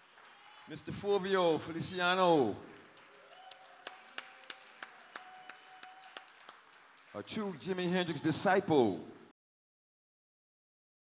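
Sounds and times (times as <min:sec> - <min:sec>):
hand claps: 0:02.6 - 0:07.8.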